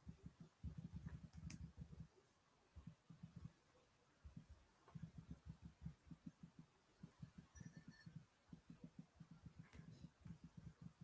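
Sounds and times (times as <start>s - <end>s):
faint clicks: 0.3s - 2.1s, 4.3s - 11.0s
soft low bumps: 4.2s - 11.0s.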